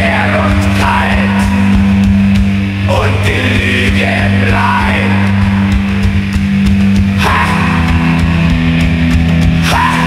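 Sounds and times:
drums: 0.0 - 10.0
electric guitar chords: 0.0 - 10.0.

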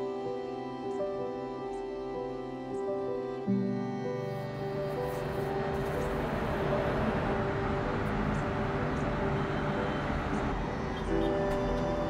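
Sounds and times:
soft background music: 0.0 - 12.0
rushing rumble: 5.0 - 12.0.

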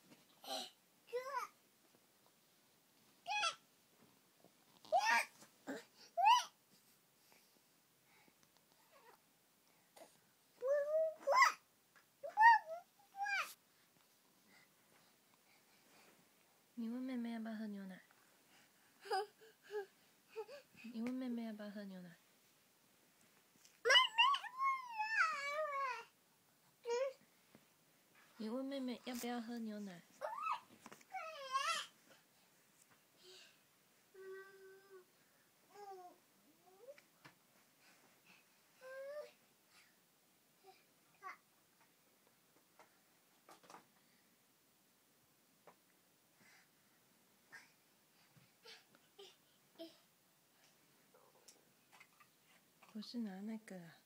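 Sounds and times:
baby squealing cry: 23.9 - 26.0.

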